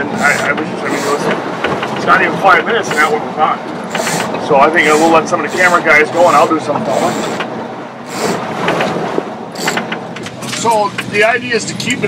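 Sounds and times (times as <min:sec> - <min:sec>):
boat engine running: 0:00.0 - 0:11.3
sharp clicks and rattles: 0:00.0 - 0:12.0.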